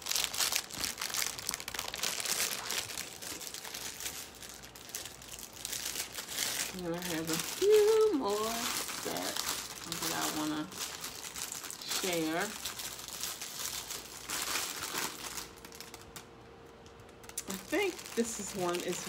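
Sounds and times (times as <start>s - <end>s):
packaging crinkling and rustling: 0.0s - 19.0s.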